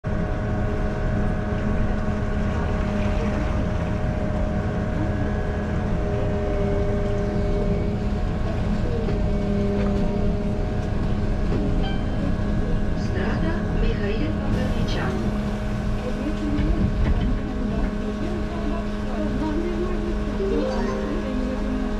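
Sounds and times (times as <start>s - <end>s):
bus engine rumble: 0.0s - 21.9s.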